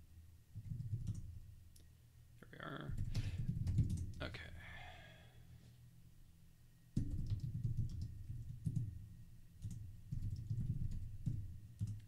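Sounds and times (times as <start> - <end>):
computer keyboard typing: 0.6 - 1.3, 2.9 - 4.2, 7.0 - 8.9, 9.6 - 12.0.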